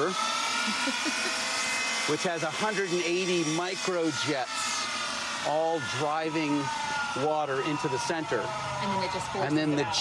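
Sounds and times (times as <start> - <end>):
small jet engine running: 0.0 - 10.0.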